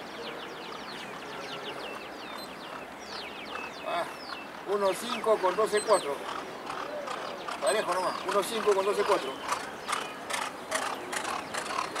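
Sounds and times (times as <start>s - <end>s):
hoofbeats of galloping horse on dirt: 6.3s - 12.0s.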